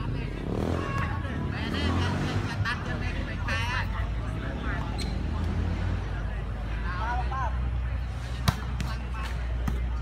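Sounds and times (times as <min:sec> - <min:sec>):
volleyball slaps: 0:08.4 - 0:10.0.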